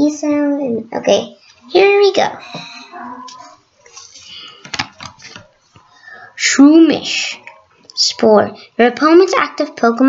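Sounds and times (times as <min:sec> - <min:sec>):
trading cards clicking and rustling: 0:03.9 - 0:05.5.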